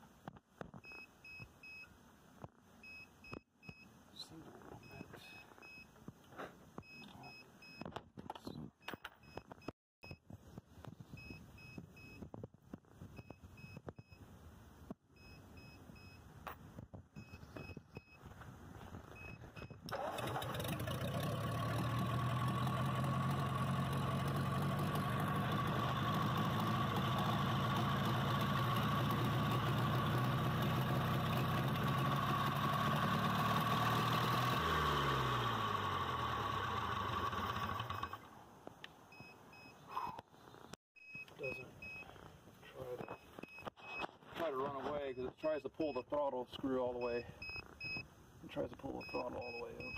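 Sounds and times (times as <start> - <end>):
faint electronic beeping: 2.8 - 6.0, 6.8 - 10.2, 15.1 - 16.3, 41.0 - 49.9
tractor engine running: 19.9 - 38.3.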